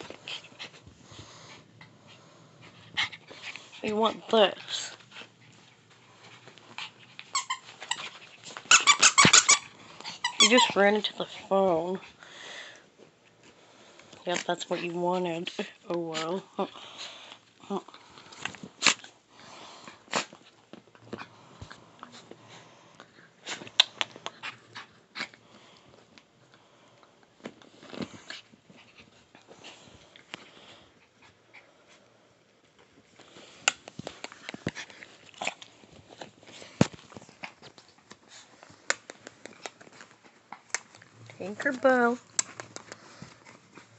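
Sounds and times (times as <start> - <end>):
squeaky dog toy squeaking: 7.3 - 8.0, 8.7 - 10.8.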